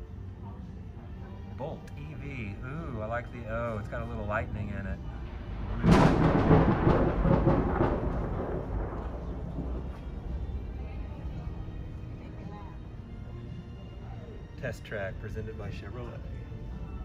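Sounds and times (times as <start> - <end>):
loud rumbling boom: 5.2 - 11.8.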